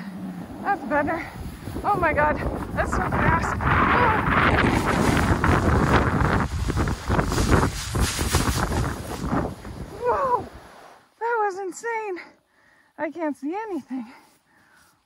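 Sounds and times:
wind buffeting microphone: 0:00.0 - 0:10.8
sand spraying: 0:00.0 - 0:11.0
board sliding down sand: 0:00.0 - 0:11.2.

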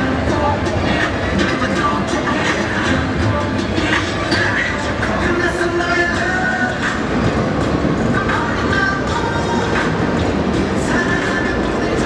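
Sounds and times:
city street rumble and hiss: 0:00.0 - 0:12.0.

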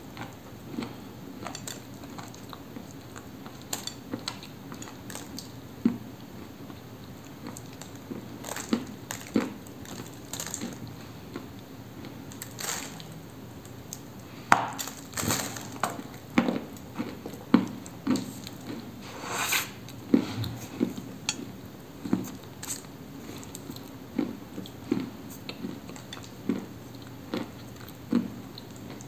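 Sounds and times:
cookie crunching while chewed: 0:00.0 - 0:19.0, 0:20.8 - 0:29.0.

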